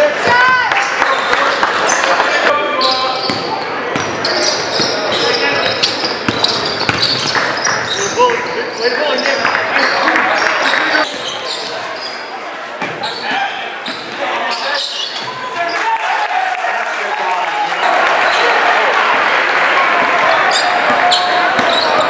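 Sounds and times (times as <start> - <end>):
sneakers squeaking: 1.2 - 15.8, 20.2 - 22.0.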